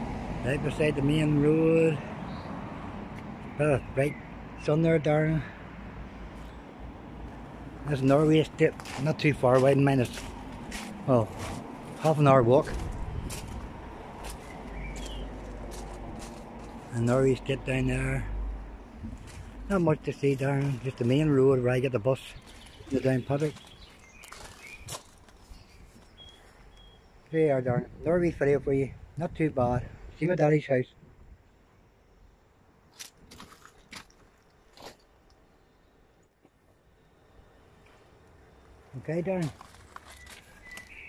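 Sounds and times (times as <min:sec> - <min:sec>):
short crunching noises: 0:08.7 - 0:17.0, 0:22.4 - 0:26.8, 0:32.9 - 0:35.2, 0:39.4 - 0:41.0.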